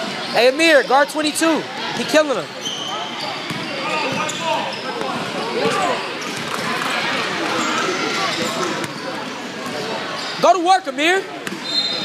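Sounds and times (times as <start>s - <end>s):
chatter of many people: 0.0s - 12.0s
basketball bouncing on hardwood: 3.5s - 3.7s.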